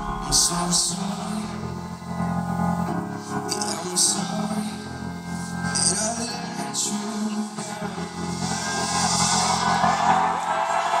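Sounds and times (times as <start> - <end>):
steady bass line: 0.0 - 3.1
crowd noise: 0.0 - 4.9, 5.7 - 11.0
live concert music: 0.0 - 11.0.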